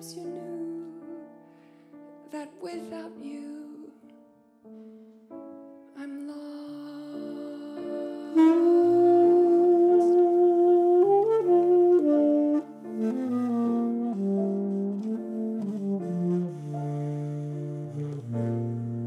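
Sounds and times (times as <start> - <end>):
piano accompaniment: 0.0 - 19.0
tenor saxophone jazz melody: 7.9 - 19.0.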